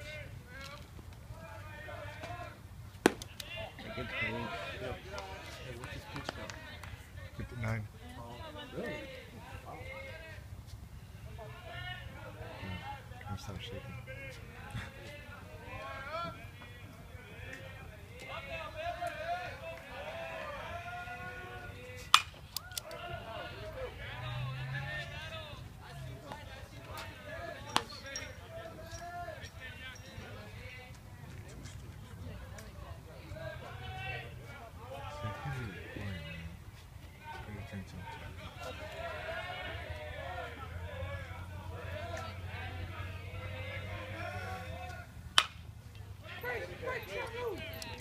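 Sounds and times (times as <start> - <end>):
spectator chatter: 0.0 - 48.0
baseball smacking into mitt: 3.0 - 3.4
bat cracking ball: 3.0 - 3.4, 22.1 - 22.4, 45.3 - 45.7.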